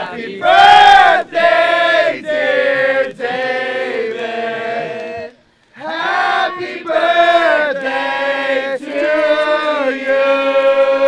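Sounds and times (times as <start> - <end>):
men singing together: 0.0 - 11.0.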